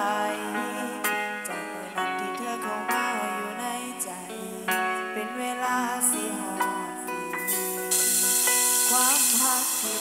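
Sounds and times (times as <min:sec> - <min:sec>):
electric guitar: 0:00.0 - 0:10.0
keyboard: 0:00.0 - 0:10.0
bright hissing wash: 0:07.5 - 0:10.0.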